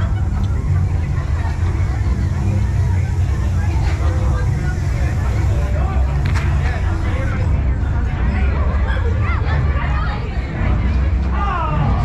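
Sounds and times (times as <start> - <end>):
crowd talking and calling out: 0.0 - 12.0
steady low rumble: 0.0 - 12.0.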